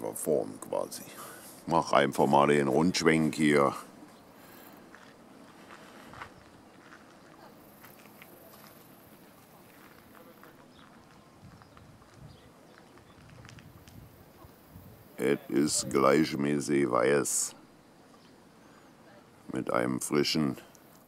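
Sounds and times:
soft clicks and rustles: 0:04.8 - 0:14.6.

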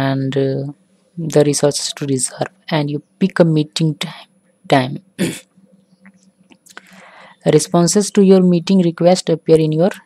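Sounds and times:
person coughing: 0:05.2 - 0:05.4.

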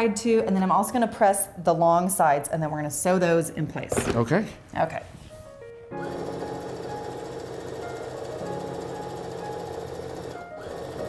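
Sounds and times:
background music with held notes: 0:05.2 - 0:11.0
sewing machine running: 0:06.0 - 0:11.0.

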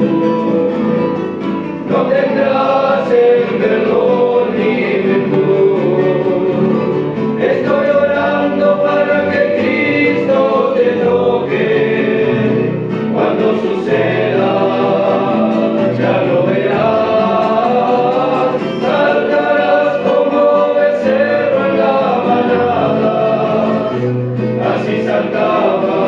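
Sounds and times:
men's vocal group singing gospel: 0:01.8 - 0:26.0.

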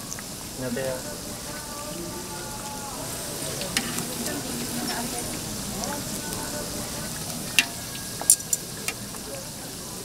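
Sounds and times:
fish cakes sizzling in hot oil: 0:00.0 - 0:10.0.

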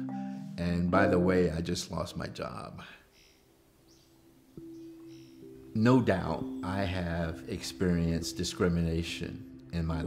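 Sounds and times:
soft background music: 0:00.0 - 0:10.0
faint high chirps: 0:03.0 - 0:07.7.

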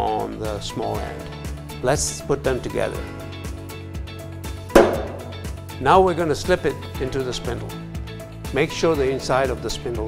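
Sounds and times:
background music: 0:00.0 - 0:10.0
drill chuck knocking on wooden bench: 0:04.8 - 0:05.4.

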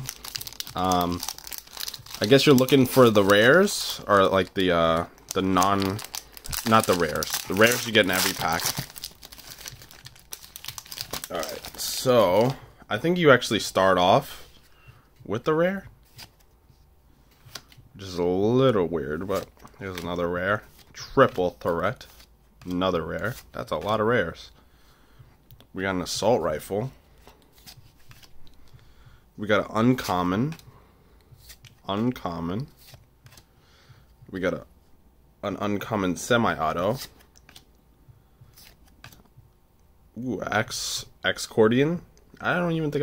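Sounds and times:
handling trading cards: 0:00.0 - 0:12.7, 0:13.6 - 0:34.3, 0:36.2 - 0:39.6.

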